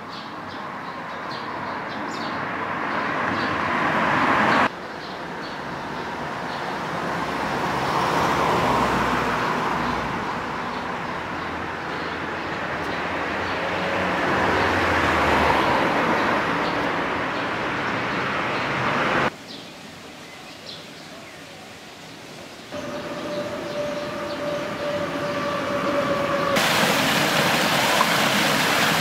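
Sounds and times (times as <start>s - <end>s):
vehicles passing: 0.0s - 19.4s, 22.7s - 29.0s.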